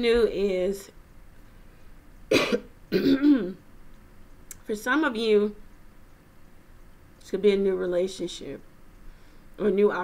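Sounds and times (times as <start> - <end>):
woman clearing throat: 2.3 - 3.6
woman coughing: 2.3 - 3.6.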